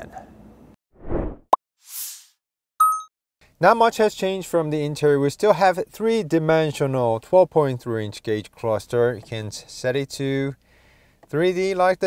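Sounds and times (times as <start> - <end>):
bell-like ding: 2.8 - 3.1.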